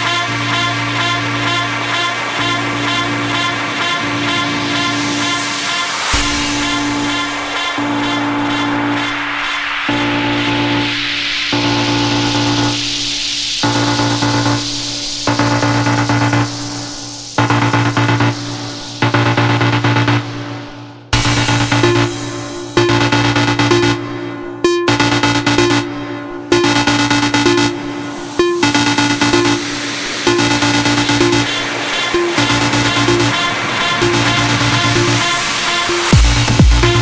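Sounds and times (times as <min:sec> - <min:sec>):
electronic dance music: 0:00.0 - 0:37.0
rising noise sweep: 0:00.0 - 0:37.0.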